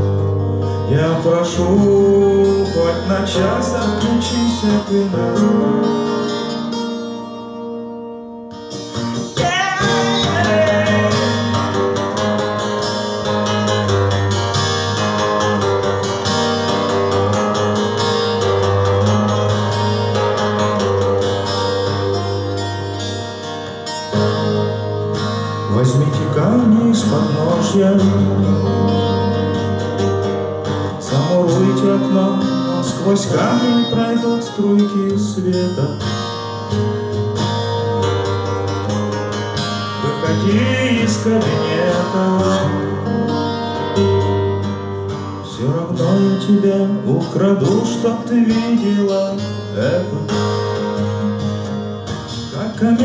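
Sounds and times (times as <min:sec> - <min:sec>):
acoustic guitar strummed and picked: 0:00.0 - 0:53.0
person singing: 0:00.6 - 0:06.6, 0:09.2 - 0:14.5, 0:25.6 - 0:29.8, 0:30.9 - 0:36.4, 0:39.8 - 0:44.6, 0:45.3 - 0:51.2, 0:52.4 - 0:53.0.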